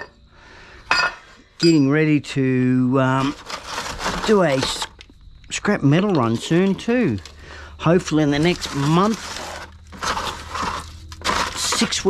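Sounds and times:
aluminium foil crinkling: 0:03.2 - 0:12.0.

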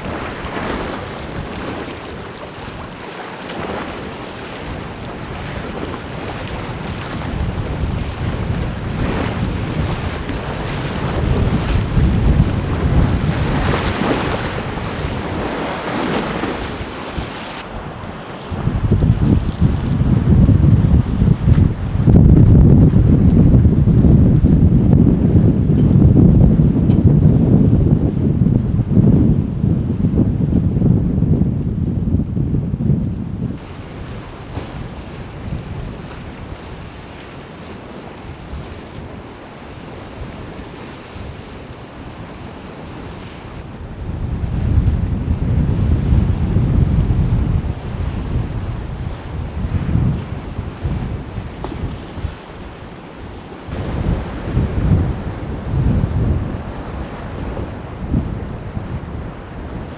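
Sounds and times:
lake waves splashing against dock: 0:00.0 - 0:28.1, 0:33.6 - 0:59.9
wind buffeting microphone: 0:00.0 - 0:59.9.

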